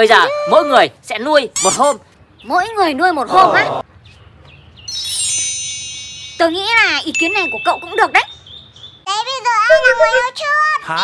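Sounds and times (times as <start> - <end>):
rising sweep of metal chimes: 4.9 - 8.0.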